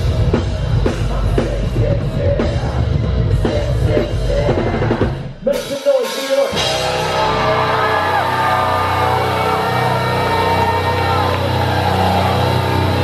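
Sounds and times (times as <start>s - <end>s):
distorted electric guitars and bass: 0.0s - 5.4s, 6.6s - 13.0s.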